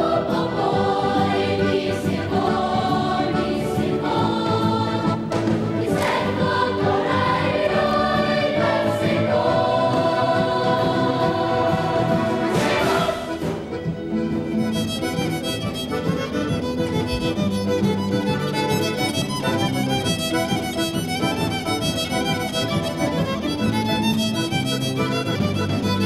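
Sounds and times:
children's choir singing: 0.0s - 14.1s
instrumental accompaniment: 0.0s - 26.0s.

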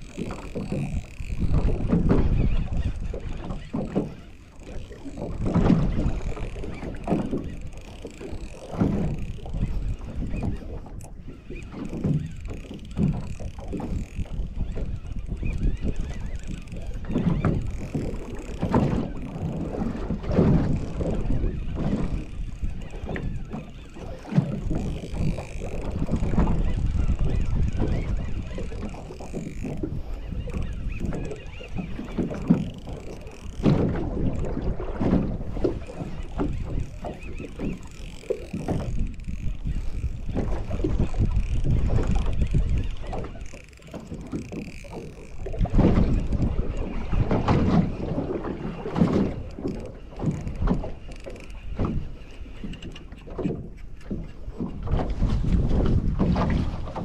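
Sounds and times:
waves lapping against boat hull: 0.0s - 57.0s
wind buffeting microphone: 0.0s - 57.0s.

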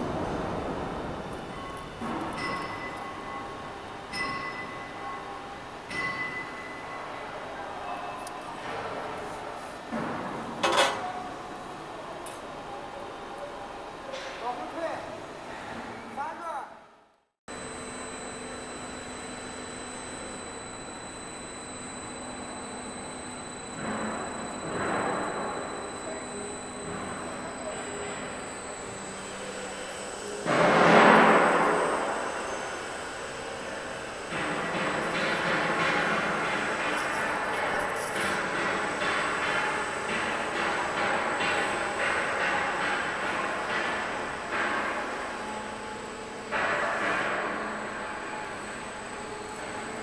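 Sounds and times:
machine motors humming with whine: 17.5s - 50.0s.

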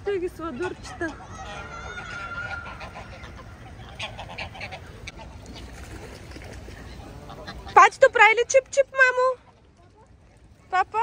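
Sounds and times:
geese honking: 0.3s - 5.6s.

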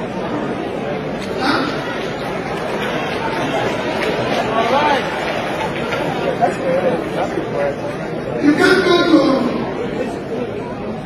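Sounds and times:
audience chatter: 0.0s - 11.0s.

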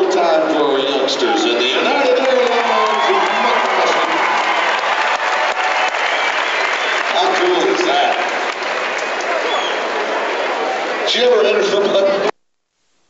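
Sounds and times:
crowd clapping: 1.6s - 11.1s.

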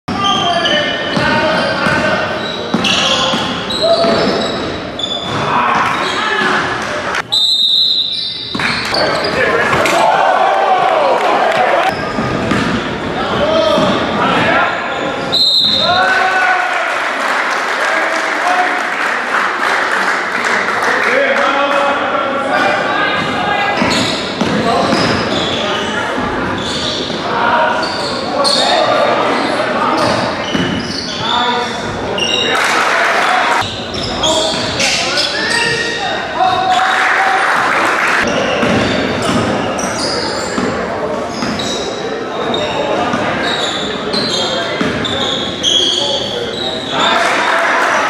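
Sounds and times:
echoing voices: 0.1s - 7.3s, 8.0s - 48.0s
sneakers squeaking: 0.1s - 10.0s, 11.6s - 16.1s, 22.5s - 32.7s, 33.6s - 47.9s
basketball bouncing on wooden floor: 12.2s - 12.8s.

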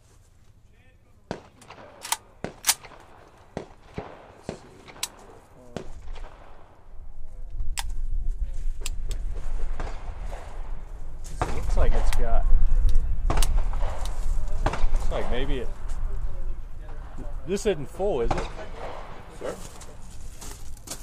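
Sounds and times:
rifle shots: 1.3s - 6.8s, 13.2s - 15.7s, 16.9s - 19.6s
low rumble: 5.8s - 20.4s.

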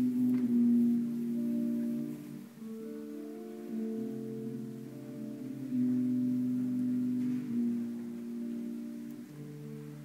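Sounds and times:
choir holding low chords: 0.0s - 10.0s.

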